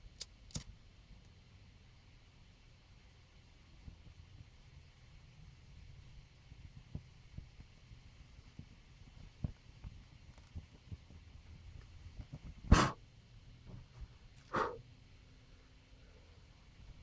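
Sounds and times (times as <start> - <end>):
puffs of breath blowing: 12.7 - 13.0, 14.4 - 14.8.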